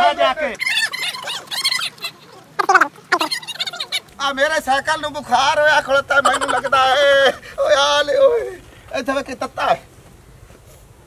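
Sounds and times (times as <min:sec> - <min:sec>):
person crying out high-pitched: 0:02.6 - 0:03.3.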